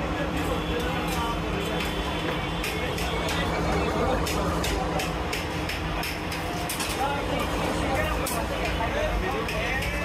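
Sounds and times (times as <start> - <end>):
voices: 0.0 - 10.0
sharp clacks: 4.2 - 7.0.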